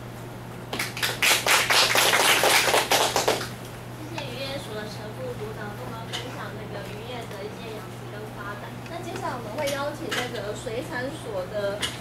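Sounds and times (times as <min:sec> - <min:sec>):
audience applause: 0:00.8 - 0:03.5.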